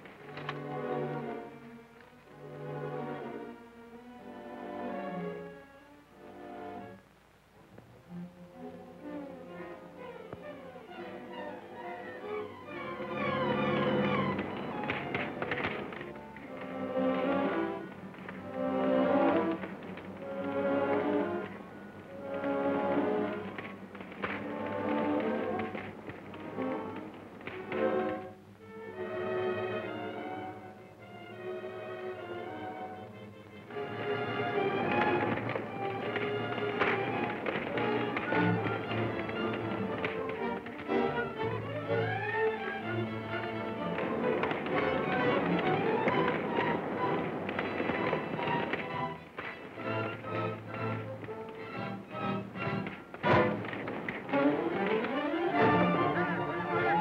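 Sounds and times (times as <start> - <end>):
orchestral film music: 0.0 - 57.0
tapping beat: 34.8 - 42.2.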